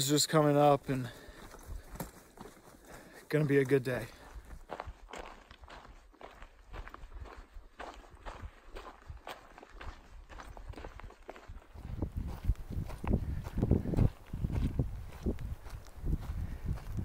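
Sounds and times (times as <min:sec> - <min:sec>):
footsteps on dirt trail: 0:00.0 - 0:17.0.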